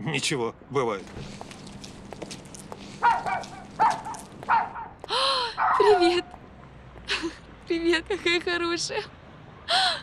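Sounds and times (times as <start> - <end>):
dog barking: 3.0 - 5.0, 5.6 - 6.2
dog yelping: 3.0 - 5.0, 5.6 - 6.3.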